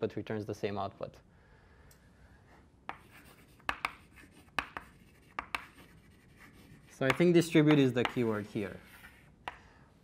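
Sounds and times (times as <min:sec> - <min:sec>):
chalk scratching on blackboard: 0:02.9 - 0:09.6
chalk tapping on board: 0:02.9 - 0:09.6.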